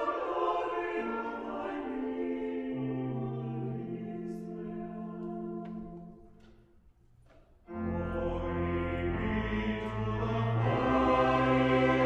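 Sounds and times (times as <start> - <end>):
choir singing slow notes: 0.0 - 6.7, 7.7 - 12.0
pipe organ chord: 7.7 - 12.0.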